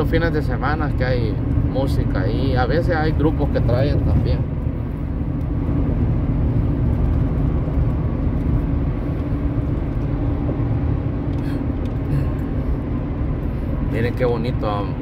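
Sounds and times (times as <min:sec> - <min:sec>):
road and engine noise in car: 0:00.0 - 0:15.0.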